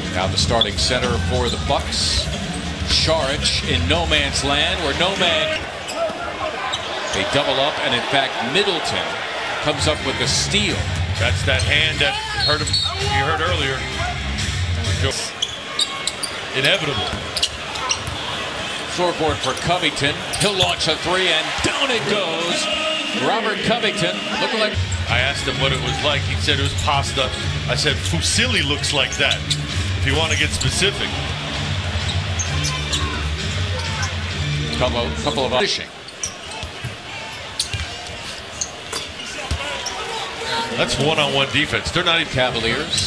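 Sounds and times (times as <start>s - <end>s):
arena crowd noise: 0.0s - 43.0s.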